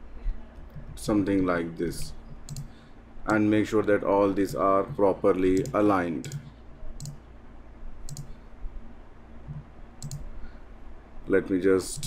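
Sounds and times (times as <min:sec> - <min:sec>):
low steady hum: 0:00.0 - 0:12.0
computer mouse clicking: 0:02.0 - 0:02.7, 0:04.9 - 0:07.2, 0:08.1 - 0:08.4, 0:09.5 - 0:10.3.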